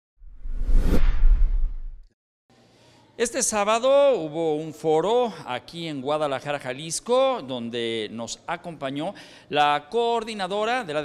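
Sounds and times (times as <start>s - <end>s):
deep low rumble: 0.2s - 2.1s.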